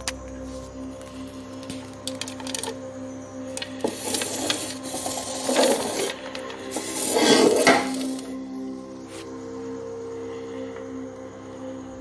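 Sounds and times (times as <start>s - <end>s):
background music with held tones: 0.0s - 12.0s.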